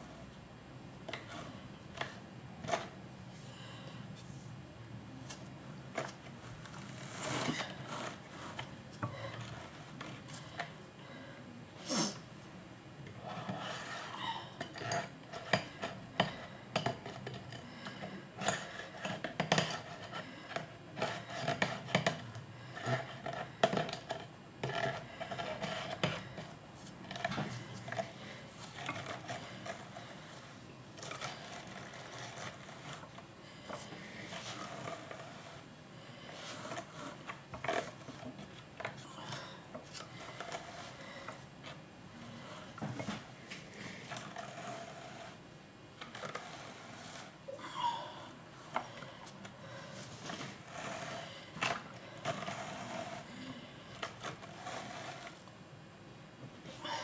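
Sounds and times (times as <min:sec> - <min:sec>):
drum carder rasping through wool: 0:50.2 - 0:51.4, 0:52.2 - 0:53.3.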